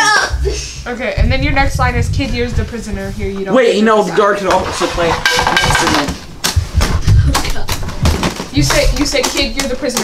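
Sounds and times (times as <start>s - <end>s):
knocks and low thumps: 0.1s - 3.6s, 4.2s - 10.0s.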